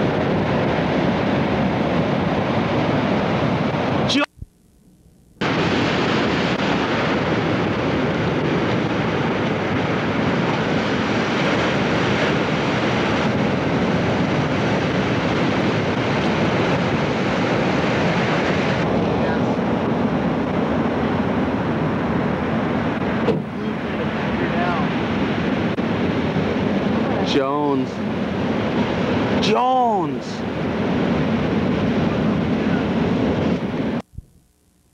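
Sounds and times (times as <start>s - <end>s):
breaking surf roar: 0.0s - 4.4s, 5.4s - 34.0s
wind on microphone: 0.0s - 4.5s, 5.4s - 34.5s.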